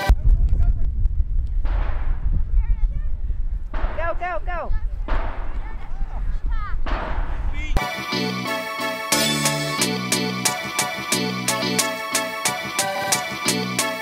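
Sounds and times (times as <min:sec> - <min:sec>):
wind buffeting microphone: 0:00.1 - 0:07.8.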